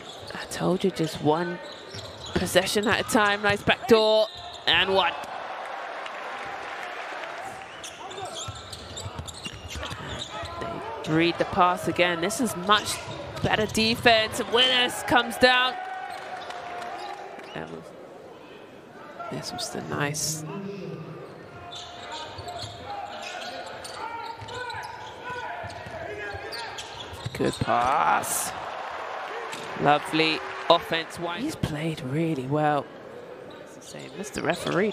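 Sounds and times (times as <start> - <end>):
voices in hall: 0.0 - 34.9
indoor crowd murmur: 31.6 - 34.2.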